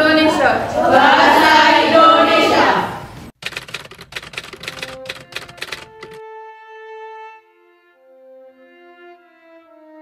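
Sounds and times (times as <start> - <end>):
typewriter key clacks: 3.4 - 6.2.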